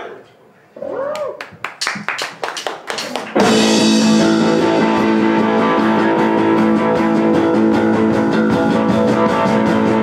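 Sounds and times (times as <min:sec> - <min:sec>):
rock band playing: 0:03.0 - 0:10.0.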